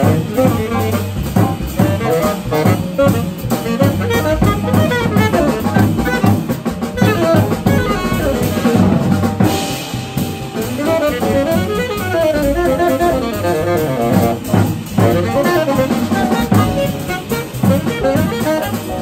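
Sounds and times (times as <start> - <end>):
drum kit playing: 0.0 - 19.0
tenor saxophone solo: 0.0 - 19.0
upright bass: 0.0 - 19.0.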